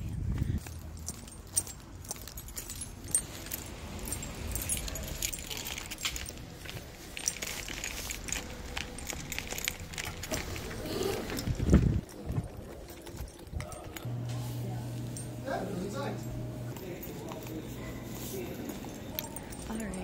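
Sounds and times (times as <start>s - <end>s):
wind rumble on microphone: 0.0s - 0.6s, 11.4s - 12.6s
metal items jingling: 0.1s - 20.0s.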